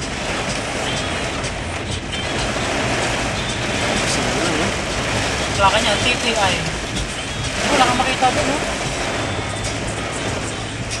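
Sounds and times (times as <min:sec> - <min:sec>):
engine humming: 0:00.0 - 0:11.0
heavy rain on car roof: 0:00.0 - 0:11.0
windshield wiper sweeping: 0:00.0 - 0:11.0.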